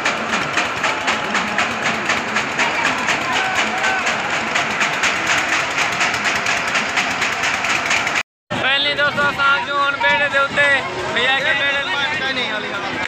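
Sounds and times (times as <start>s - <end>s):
many voices: 0.0s - 7.9s, 8.5s - 13.0s
fairground ride machinery: 0.0s - 13.0s.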